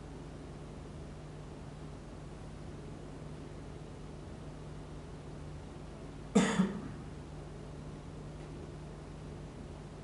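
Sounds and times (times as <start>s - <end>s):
low room hum: 0.0s - 10.0s
person coughing: 6.4s - 7.0s.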